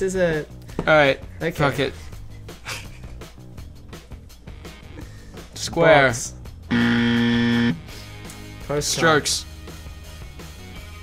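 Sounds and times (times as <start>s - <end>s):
wrong answer buzzer: 6.7s - 7.9s.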